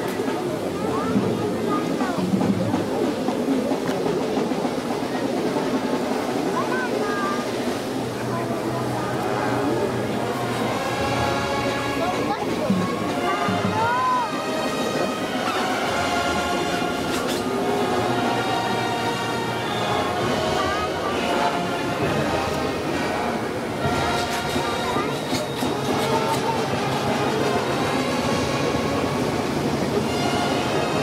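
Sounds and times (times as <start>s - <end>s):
crowd noise: 0.0s - 31.0s
brass band sustained chords: 7.8s - 31.0s.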